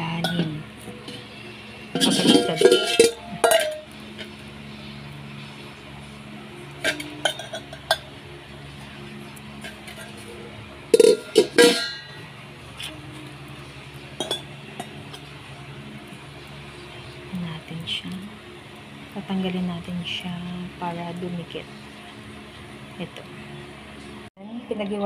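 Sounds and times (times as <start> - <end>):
low background hum: 0.0 - 25.0
metal bowl knocks and clinks: 1.9 - 3.9, 6.8 - 8.1, 10.9 - 12.2, 14.2 - 15.2.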